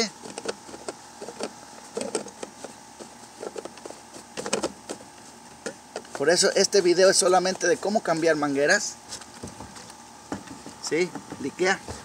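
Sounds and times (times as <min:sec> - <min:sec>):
clicks and rubbing of plastic hoses: 0:00.0 - 0:08.4
faint steady hum: 0:00.0 - 0:12.0.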